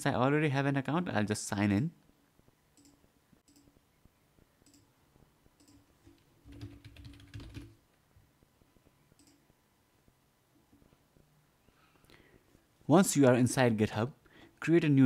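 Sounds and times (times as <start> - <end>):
computer keyboard typing: 5.6 - 7.8.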